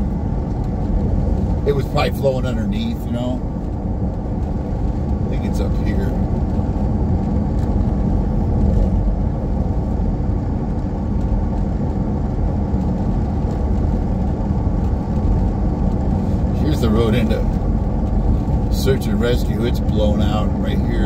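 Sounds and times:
road and engine noise in vehicle cabin: 0.0s - 21.0s.

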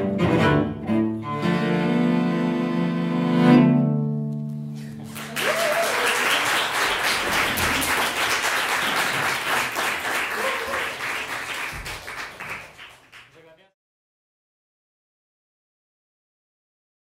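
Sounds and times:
audience applauding: 4.8s - 13.7s.

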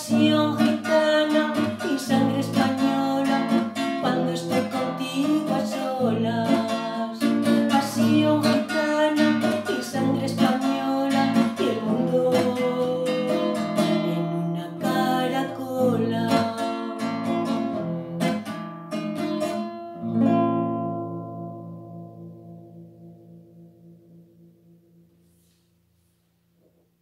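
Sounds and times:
woman singing: 0.0s - 17.8s
classical guitar strummed: 0.0s - 26.0s.

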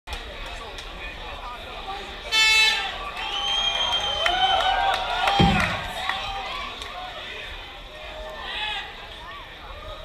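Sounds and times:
arena crowd shouting: 2.2s - 10.0s.

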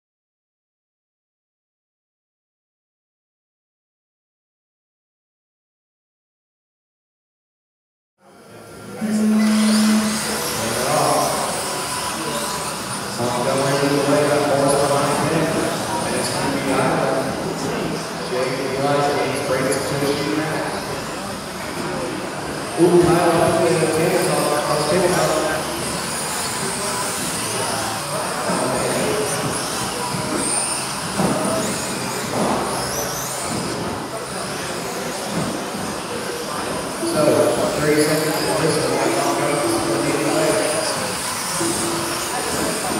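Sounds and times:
loud steady tone: 8.2s - 35.4s, 36.3s - 42.9s
rc car motor whine: 8.3s - 42.9s
voices: 8.3s - 42.9s
hall noise: 8.6s - 42.9s.

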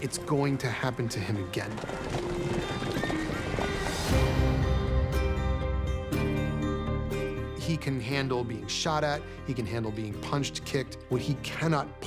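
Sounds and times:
horses galloping on snow: 0.0s - 4.3s
music: 0.0s - 12.0s.

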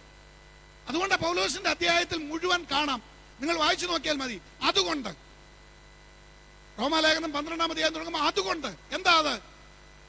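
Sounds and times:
electrical mains hum: 0.0s - 10.0s
man speaking: 0.9s - 5.2s, 6.8s - 9.5s.

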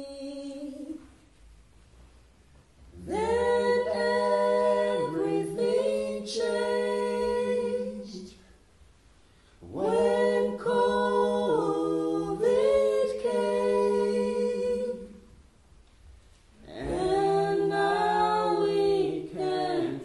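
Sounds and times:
unaccompanied voices singing: 0.0s - 1.1s, 2.9s - 8.6s, 9.6s - 15.4s, 16.5s - 20.0s.

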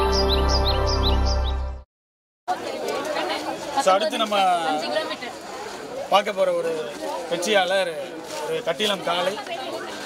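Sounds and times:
people talking over one another: 2.5s - 10.0s.

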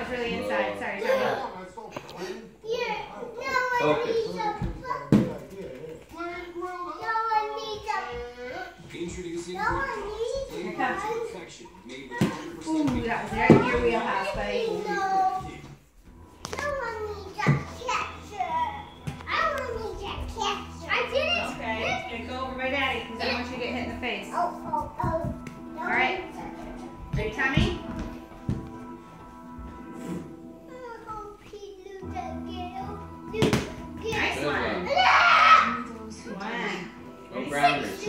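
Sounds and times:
young children calling at play: 34.8s - 35.9s.

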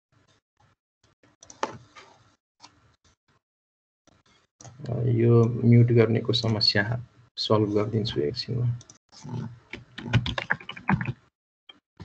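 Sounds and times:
person talking: 4.8s - 11.2s
computer keyboard clicking: 9.7s - 11.1s.

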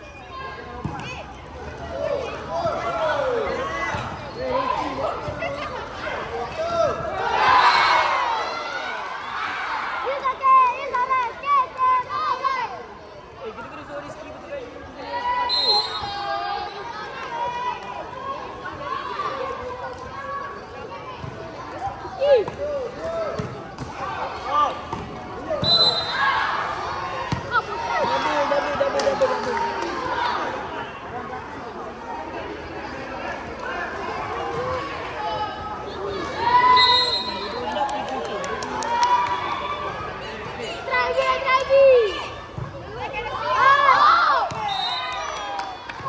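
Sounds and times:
high whistle: 15.5s - 16.2s, 25.6s - 26.3s, 36.6s - 37.6s, 44.6s - 45.3s
children shouting: 43.3s - 46.0s.

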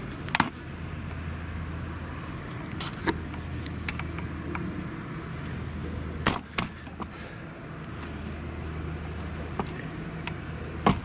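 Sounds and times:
harvester chopping drone: 0.0s - 11.0s.

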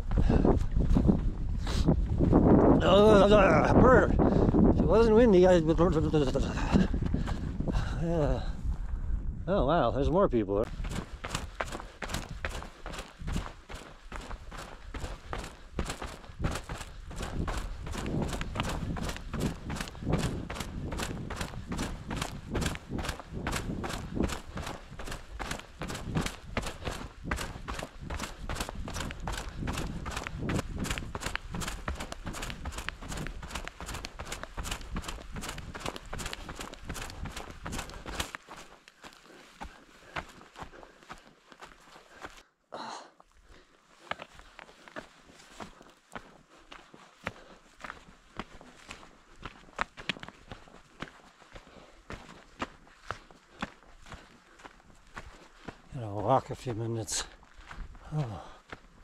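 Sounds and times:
footsteps on dirt trail: 0.0s - 8.9s, 10.6s - 42.5s, 43.2s - 59.0s
wind on microphone: 0.0s - 38.2s.

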